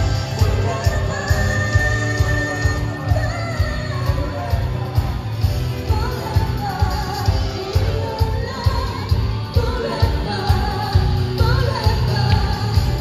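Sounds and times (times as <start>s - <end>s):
drum kit heavy beat: 0.0s - 13.0s
electric guitars: 0.0s - 13.0s
vocalists singing: 0.0s - 13.0s.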